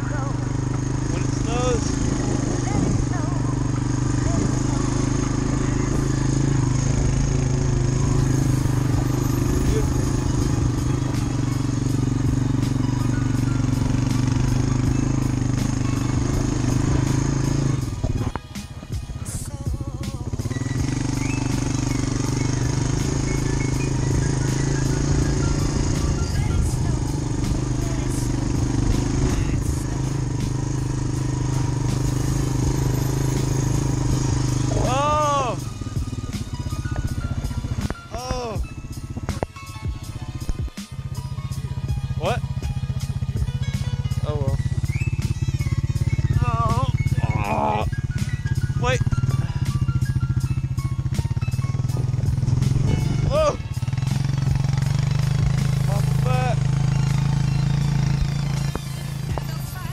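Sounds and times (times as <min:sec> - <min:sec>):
atv engine running: 0:00.0 - 0:59.9.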